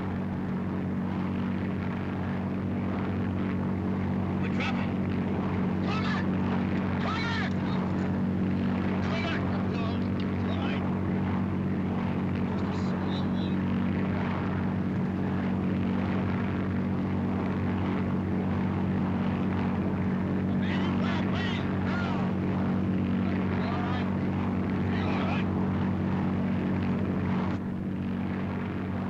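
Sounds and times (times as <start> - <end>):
vehicle engine drone from cabin: 0.0 - 29.0.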